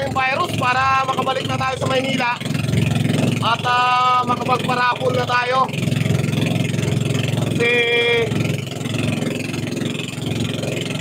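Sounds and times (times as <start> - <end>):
small boat engine running: 0.0 - 11.0.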